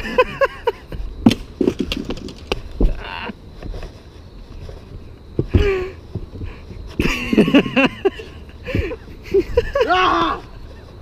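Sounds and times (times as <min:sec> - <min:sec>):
men laughing: 0:00.0 - 0:01.0, 0:06.9 - 0:11.0.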